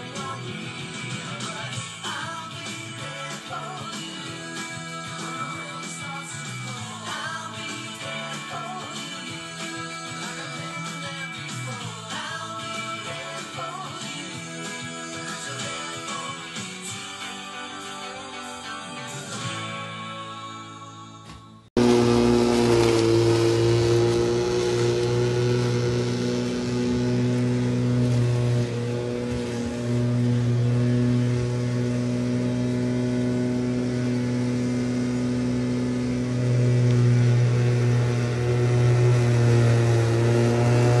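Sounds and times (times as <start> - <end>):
electric lawnmower running: 21.8 - 41.0.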